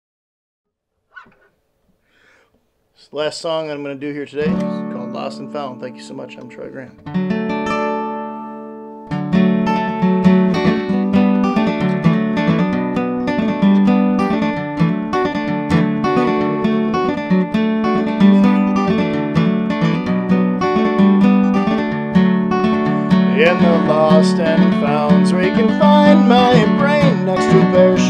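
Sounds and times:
acoustic guitar picking: 0:04.4 - 0:28.0.

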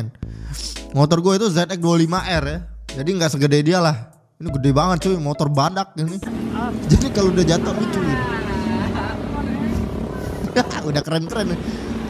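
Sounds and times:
motorcycle engine running: 0:06.3 - 0:12.0
man shouting: 0:07.8 - 0:09.6.

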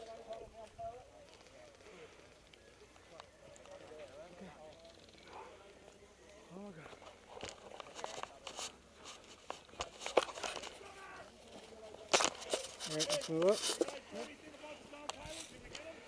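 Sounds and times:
footsteps crunching on dry dirt: 0:06.7 - 0:16.0
clothing and gear rustling: 0:06.9 - 0:15.9.

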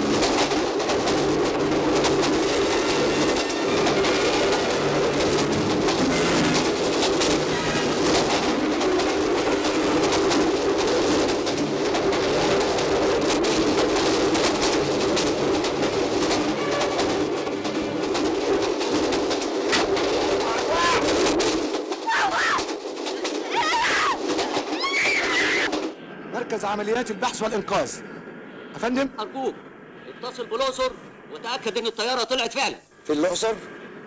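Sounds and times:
train carriage crash rumble: 0:00.0 - 0:26.1
people shouting and screaming: 0:22.0 - 0:22.7, 0:23.5 - 0:25.7.

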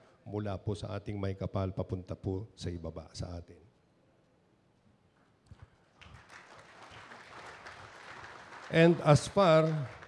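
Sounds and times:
audience applause: 0:06.0 - 0:10.0.

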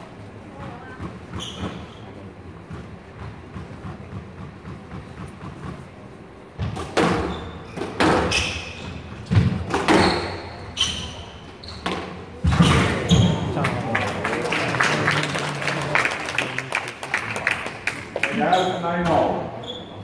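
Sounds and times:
shoes squeaking on court floor: 0:00.6 - 0:03.6, 0:06.6 - 0:13.6, 0:18.4 - 0:20.0
people clapping: 0:13.5 - 0:18.6.

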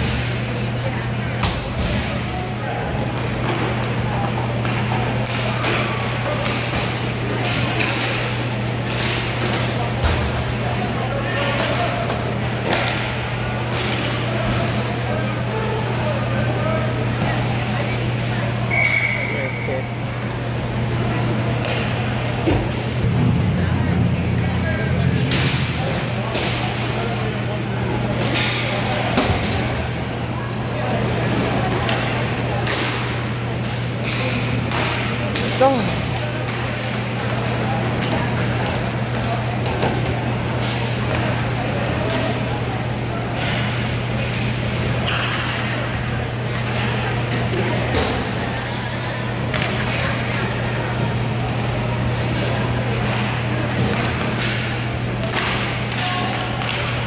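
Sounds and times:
hockey sticks clacking: 0:08.8 - 0:10.2, 0:32.6 - 0:33.0, 0:45.0 - 0:45.7, 0:53.0 - 0:57.0
steady low hum: 0:19.3 - 0:57.0.

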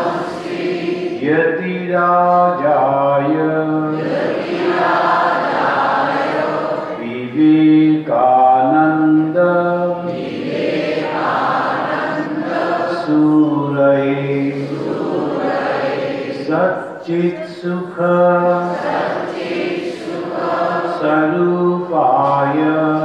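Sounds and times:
man chanting a hymn: 0:01.1 - 0:04.2, 0:07.0 - 0:10.3, 0:12.6 - 0:14.9, 0:16.3 - 0:18.9, 0:20.9 - 0:23.0.

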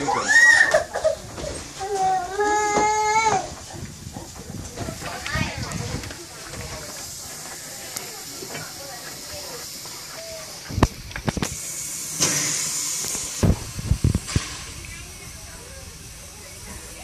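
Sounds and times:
faint voices: 0:00.0 - 0:17.0
steam locomotive hiss: 0:00.0 - 0:17.0.

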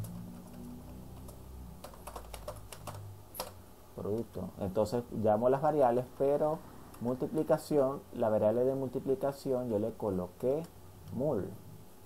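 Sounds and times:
keyboard typing: 0:00.0 - 0:04.4.

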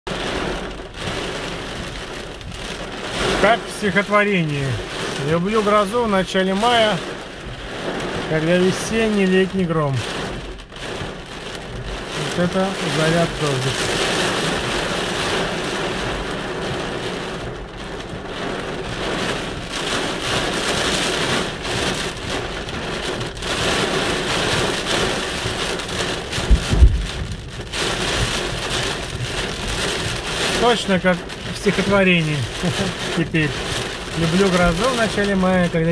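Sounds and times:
heavy rain on car roof: 0:00.0 - 0:35.9
deep boom: 0:25.4 - 0:30.2.

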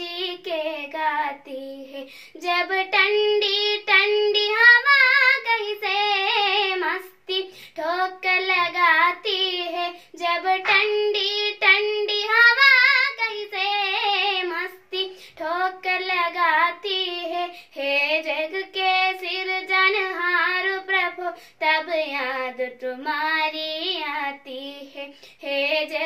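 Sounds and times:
girl singing unaccompanied: 0:00.0 - 0:26.0
girl breathing: 0:02.0 - 0:02.4, 0:07.4 - 0:07.8, 0:09.9 - 0:10.2, 0:15.0 - 0:15.4, 0:17.5 - 0:17.8, 0:21.3 - 0:21.6, 0:25.1 - 0:25.4.

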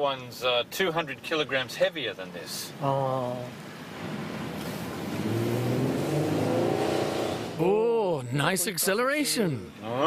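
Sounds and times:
minivan engine accelerating: 0:02.7 - 0:07.8.

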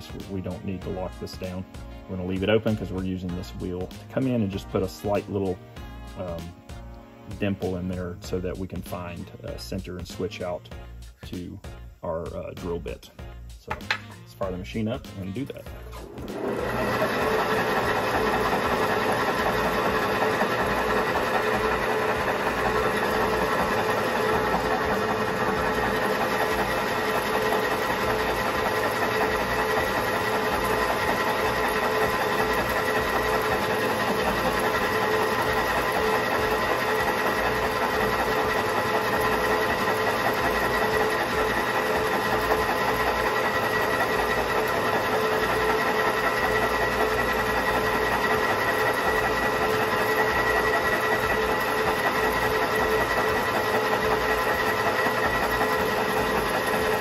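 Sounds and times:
metal lathe whining: 0:00.0 - 0:06.5, 0:13.6 - 0:57.0
drill cutting brass: 0:13.6 - 0:57.0.

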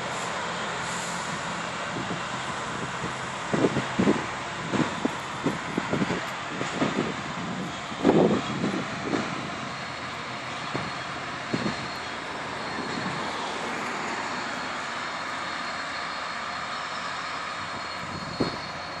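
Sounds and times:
distant rail grinder roar: 0:00.0 - 0:19.0.

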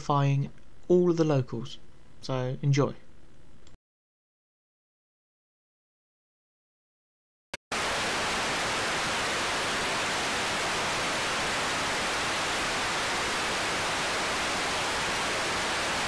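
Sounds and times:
television static hiss: 0:07.8 - 0:16.0.

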